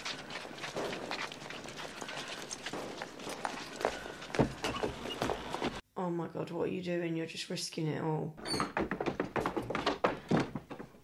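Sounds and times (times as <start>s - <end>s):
knocks and thuds: 8.5s - 11.0s.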